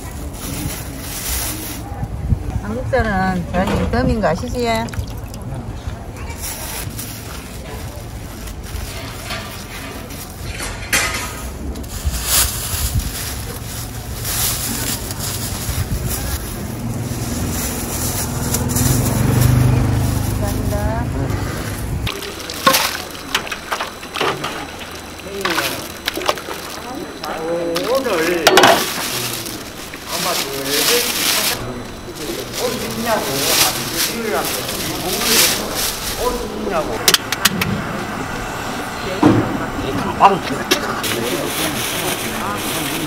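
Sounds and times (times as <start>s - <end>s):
indistinct talking: 0.0s - 43.0s
low mechanical hum: 0.0s - 43.0s
murmured voices: 12.8s - 43.0s.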